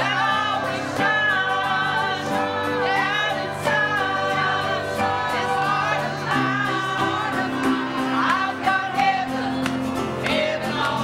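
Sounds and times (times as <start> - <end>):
choir singing a hymn: 0.0 - 11.0
piano accompaniment: 0.0 - 11.0.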